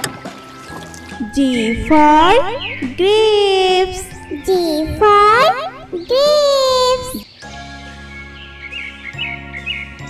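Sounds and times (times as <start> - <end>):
soft music with held notes: 0.0 - 10.0
bird chirps: 2.4 - 3.0.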